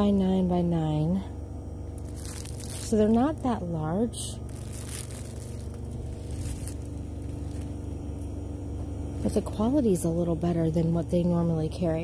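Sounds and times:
store background hum: 0.0s - 12.0s
plastic wrap rustling: 1.9s - 8.4s.

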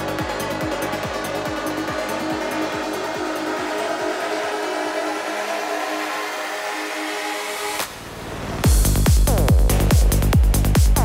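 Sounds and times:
fast kick drum: 8.6s - 11.0s.

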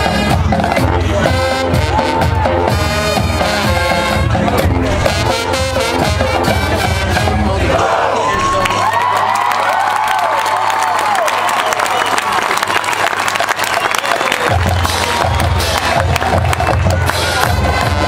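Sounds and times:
low rhythmic drumming: 0.0s - 7.6s
marching band brass music: 0.0s - 8.2s, 14.3s - 18.0s
crowd cheering and applauding: 1.1s - 3.9s, 7.7s - 18.0s.

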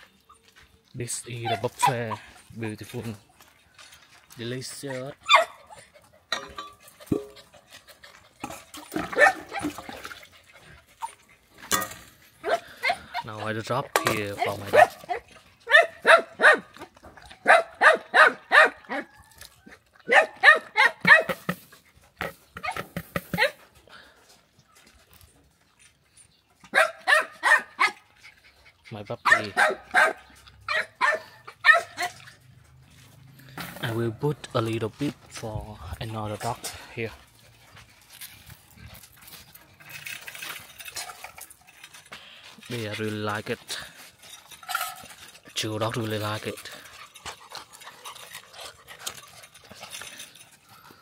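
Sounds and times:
dog barking and whining: 4.8s - 6.2s, 9.0s - 9.8s, 12.4s - 13.5s, 14.3s - 21.4s, 26.7s - 28.1s, 29.2s - 32.3s.

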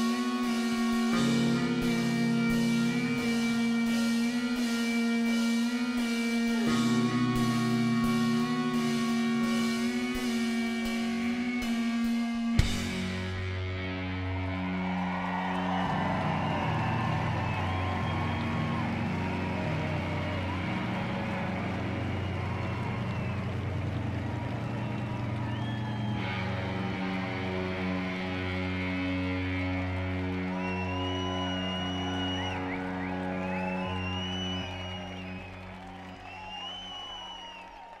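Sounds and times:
rock band sustained chords: 0.0s - 37.9s
crowd cheering and whistling: 0.0s - 38.0s.

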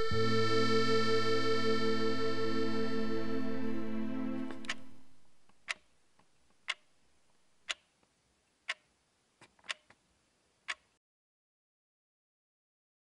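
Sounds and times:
music: 0.0s - 5.2s
wall clock ticking: 4.5s - 7.0s, 7.6s - 7.9s, 8.6s - 8.9s, 9.6s - 9.9s, 10.7s - 11.0s
faint clicks: 10.6s - 11.0s.

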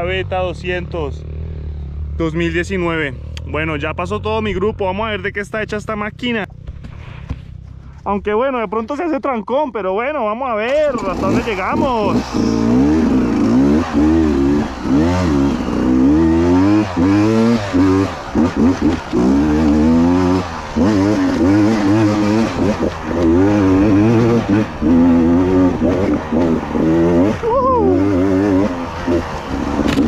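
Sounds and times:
two-stroke motorcycle engine revving: 0.0s - 3.5s, 10.7s - 30.0s.

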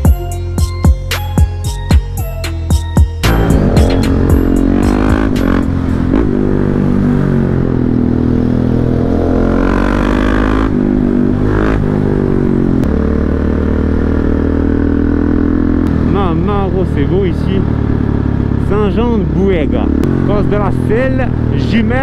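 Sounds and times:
motorcycle engine accelerating: 3.2s - 22.0s.

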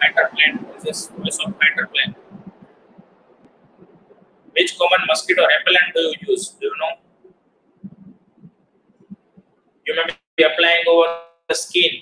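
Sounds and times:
man speaking: 0.0s - 2.2s, 4.6s - 7.0s, 9.9s - 12.0s
soft low thuds: 0.0s - 9.9s
faint hiss: 0.0s - 10.2s.

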